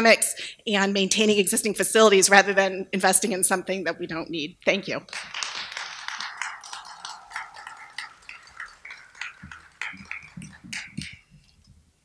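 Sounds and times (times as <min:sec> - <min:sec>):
audience applause: 0:05.1 - 0:11.6.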